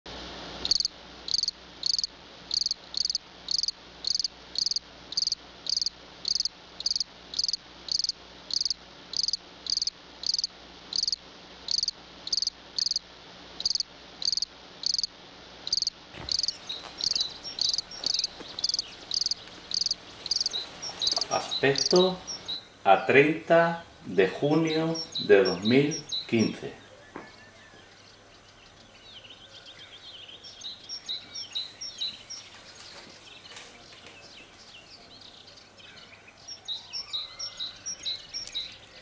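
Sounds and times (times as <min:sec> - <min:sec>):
cricket chirping: 0:00.6 - 0:22.8, 0:29.6 - 0:32.6.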